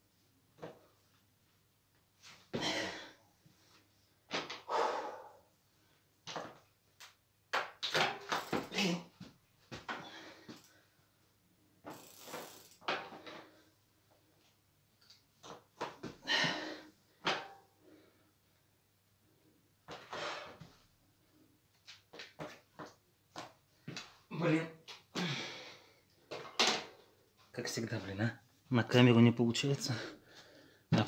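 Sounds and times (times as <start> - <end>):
bike clicks and knocks: 6.3 - 8.7, 11.8 - 13.4.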